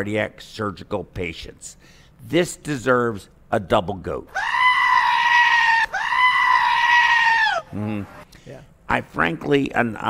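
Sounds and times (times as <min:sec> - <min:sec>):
goat bleating loudly: 0:04.3 - 0:07.7.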